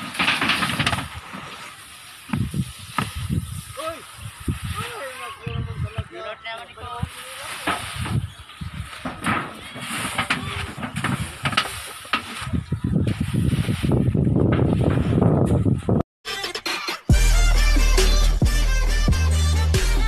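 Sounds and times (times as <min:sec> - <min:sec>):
sacks rustling and knocking: 0:00.0 - 0:05.2, 0:07.1 - 0:15.2.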